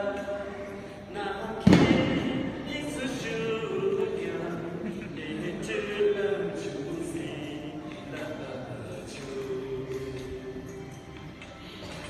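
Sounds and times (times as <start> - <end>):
loud thump: 1.6 - 2.5.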